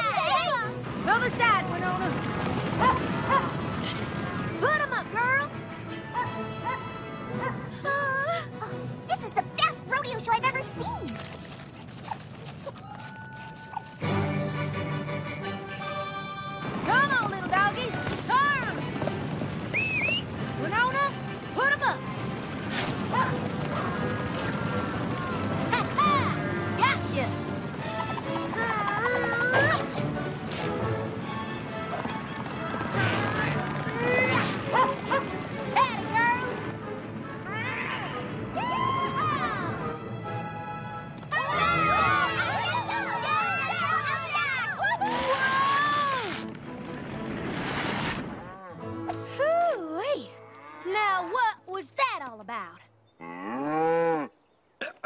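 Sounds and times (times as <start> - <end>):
running hooves clatter: 0.0 - 50.8
background music: 0.0 - 54.3
cartoon voices cheering and laughing: 28.5 - 30.0, 37.5 - 39.9, 41.3 - 46.3.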